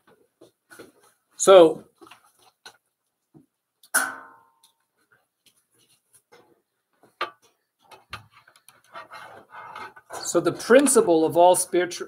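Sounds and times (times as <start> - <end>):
sharp ringing knock: 4.0 - 4.5.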